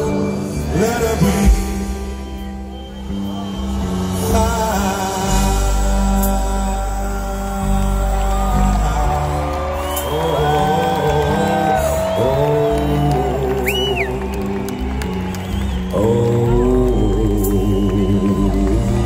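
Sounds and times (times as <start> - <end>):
rock band playing live: 0.0 - 19.0
short high whistle: 1.8 - 4.3, 9.8 - 10.7, 13.6 - 14.1, 15.4 - 16.0.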